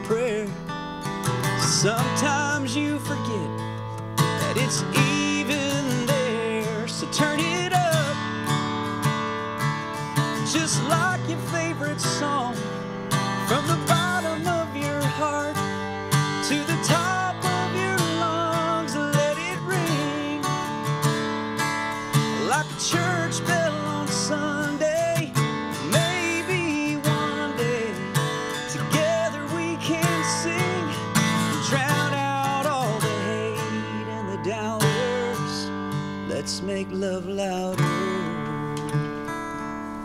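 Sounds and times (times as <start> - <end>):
man singing country song: 0.0 - 39.6
strummed acoustic guitar: 0.0 - 40.0.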